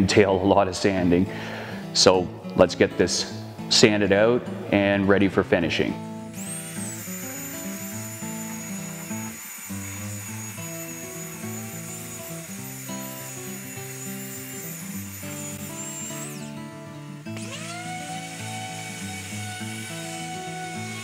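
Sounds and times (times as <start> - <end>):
belt sander motor whine: 6.2 - 21.0.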